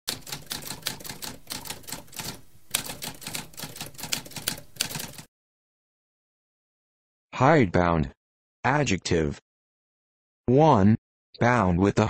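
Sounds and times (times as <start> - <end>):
typewriter keys clacking: 0.1 - 5.3.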